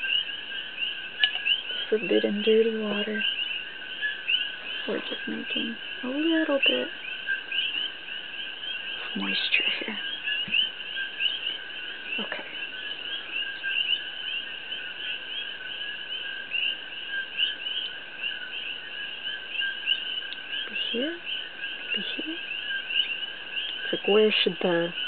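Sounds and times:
animal chorus of rapid chirps: 0:00.0 - 0:25.0.

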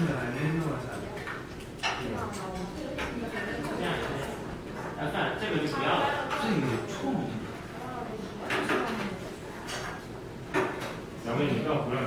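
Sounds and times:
people talking in a hall: 0:00.0 - 0:12.0.

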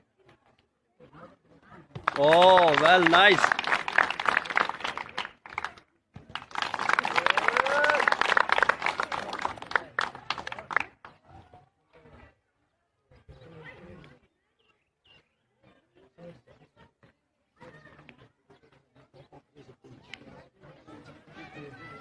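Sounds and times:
crowd clapping and cheering: 0:02.0 - 0:11.1.

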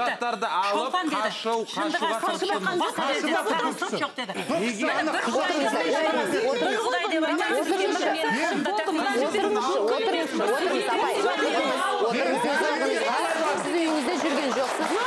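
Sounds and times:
people talking over one another: 0:00.0 - 0:15.0.

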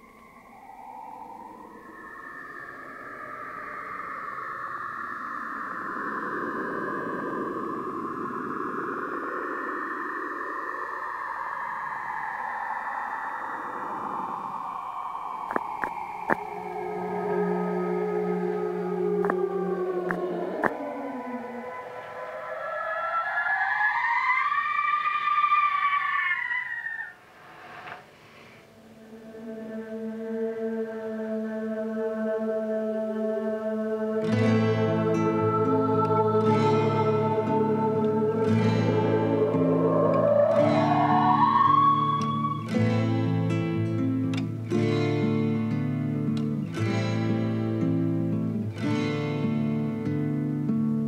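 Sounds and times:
long rising musical tone: 0:00.0 - 0:28.1, 0:28.7 - 0:51.0
synthesizer drone of filtered noise: 0:00.0 - 0:51.0.

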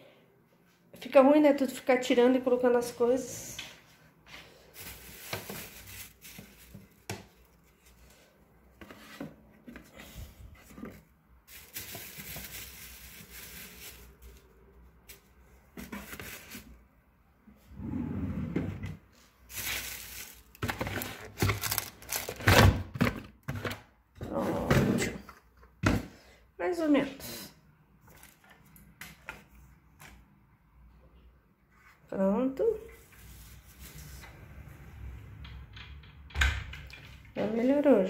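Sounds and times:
plastic bag rustling: 0:04.5 - 0:09.0, 0:09.7 - 0:16.8, 0:19.2 - 0:22.8
things set down in drawers: 0:18.6 - 0:25.2.

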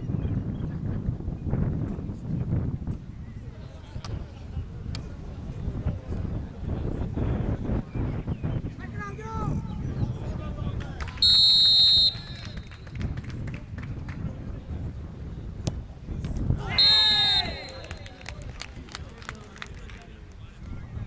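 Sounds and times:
people clapping: 0:10.8 - 0:11.3, 0:12.1 - 0:14.4, 0:17.4 - 0:20.5
referee's whistle: 0:11.2 - 0:12.7, 0:16.7 - 0:18.0
people shouting: 0:16.6 - 0:17.8.

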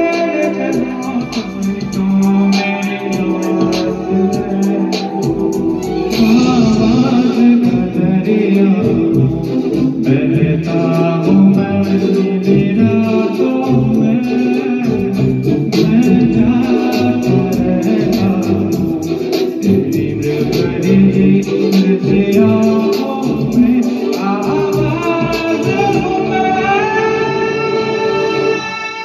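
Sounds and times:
man singing through a pa: 0:00.0 - 0:05.5, 0:06.1 - 0:28.8.

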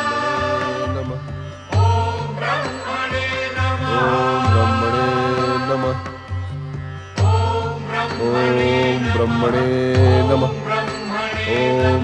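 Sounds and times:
chanted mantra: 0:00.0 - 0:06.3, 0:07.2 - 0:12.0
devotional music with held notes: 0:00.0 - 0:12.0.

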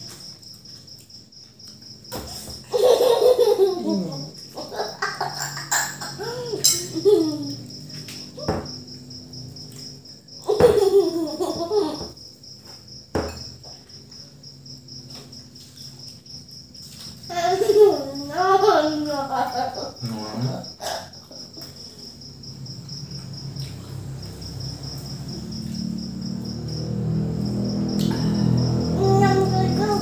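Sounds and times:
cricket chirping: 0:00.0 - 0:30.0
people laughing: 0:02.7 - 0:05.6
child's voice: 0:17.3 - 0:20.0, 0:28.8 - 0:30.0.

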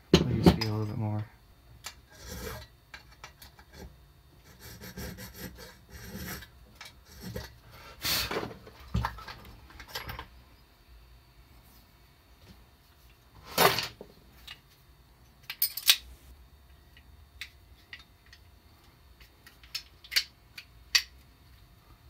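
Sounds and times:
hand file rasping on metal key: 0:04.4 - 0:06.5.

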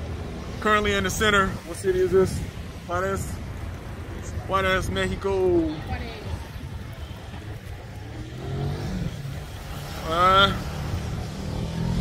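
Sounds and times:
car traffic rumble: 0:00.0 - 0:12.0.

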